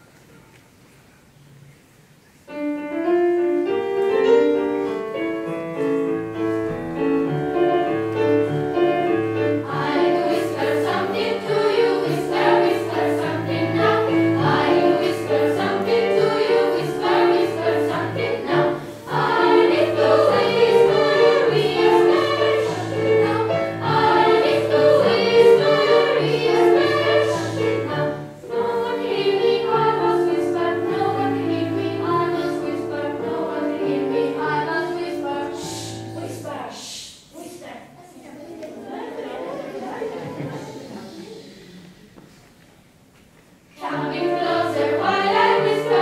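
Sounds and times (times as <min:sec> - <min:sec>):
piano accompaniment: 0:02.5 - 0:36.6, 0:43.8 - 0:46.0
children's choir singing: 0:06.4 - 0:37.0, 0:38.6 - 0:42.9, 0:43.6 - 0:46.0.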